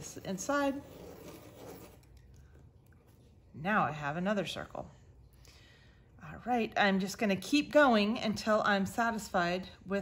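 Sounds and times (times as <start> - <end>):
pencil scratching on paper: 0.0 - 2.1.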